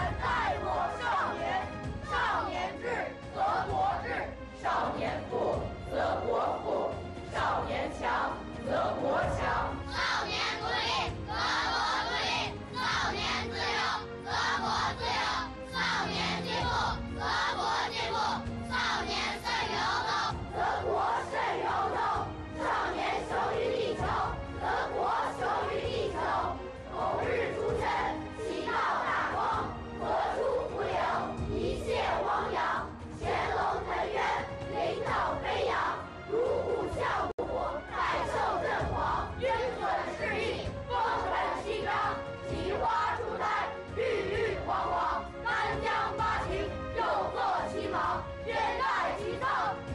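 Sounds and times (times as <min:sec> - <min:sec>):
background music: 0:00.0 - 0:49.9
children reciting in unison: 0:00.0 - 0:49.9.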